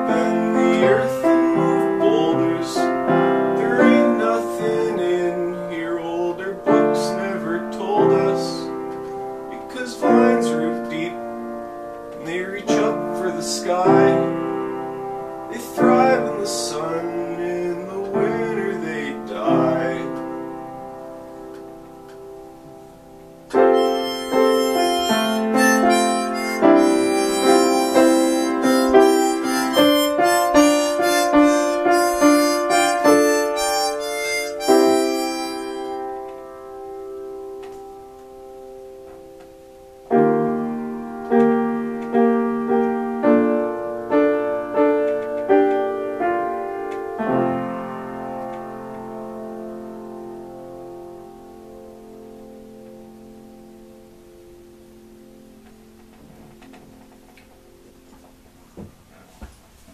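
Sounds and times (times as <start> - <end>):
piano chords: 0.0 - 59.2
harmonica: 23.6 - 36.2.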